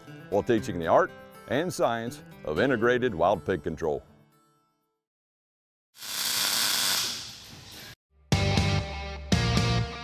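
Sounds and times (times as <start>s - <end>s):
welding arc crackling: 6.0s - 7.5s.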